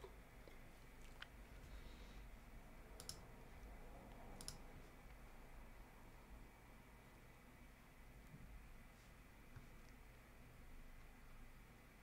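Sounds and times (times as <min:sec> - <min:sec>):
computer mouse clicks: 0:03.0 - 0:03.2, 0:04.1 - 0:04.7.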